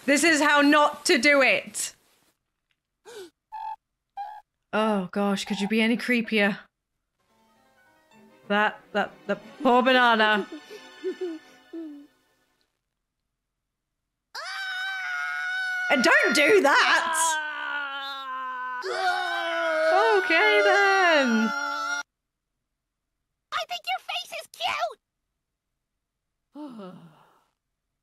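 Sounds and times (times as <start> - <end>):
person sighing: 3.0 - 3.4, 26.5 - 27.6
cartoon character screaming: 14.4 - 22.0.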